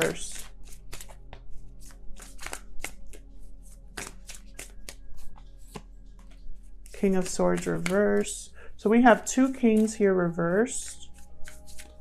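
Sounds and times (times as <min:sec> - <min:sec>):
cards being shuffled: 0:00.0 - 0:10.0, 0:10.6 - 0:12.0
faint steady background tones: 0:00.0 - 0:12.0.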